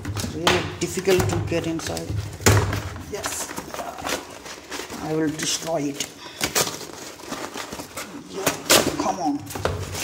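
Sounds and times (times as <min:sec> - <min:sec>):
paper packaging tearing: 0:03.1 - 0:10.0.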